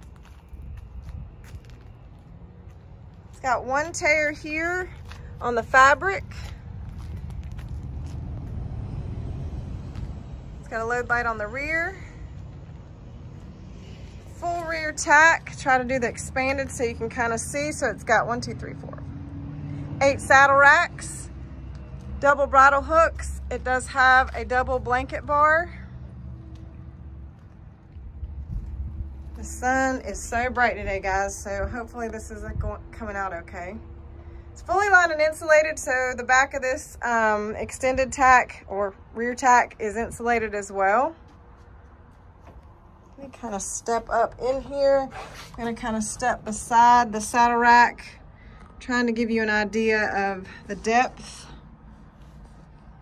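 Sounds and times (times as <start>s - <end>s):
wind buffeting microphone: 0.0s - 19.0s, 27.8s - 33.8s
faint low rumble: 0.0s - 19.1s.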